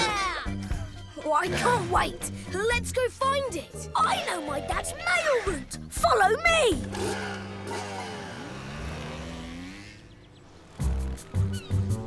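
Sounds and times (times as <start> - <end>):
music: 0.0 - 7.4, 10.6 - 12.0
cartoon motorbike engines revving: 3.2 - 12.0.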